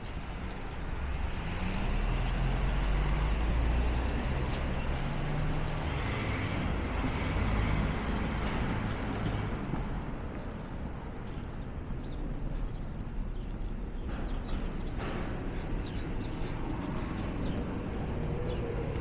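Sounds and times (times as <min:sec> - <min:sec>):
vehicle engine rumbling: 0:00.0 - 0:19.0.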